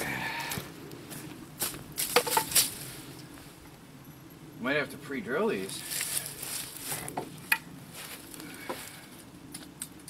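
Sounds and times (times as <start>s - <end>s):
wooden knocks and clinks: 2.1s - 2.6s.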